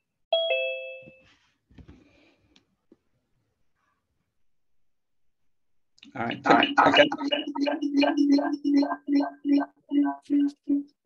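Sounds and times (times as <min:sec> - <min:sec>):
ding-dong chime: 0:00.4 - 0:01.3.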